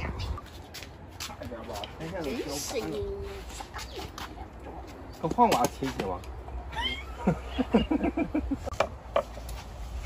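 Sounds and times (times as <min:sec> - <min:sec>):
people laughing: 0:06.7 - 0:08.7.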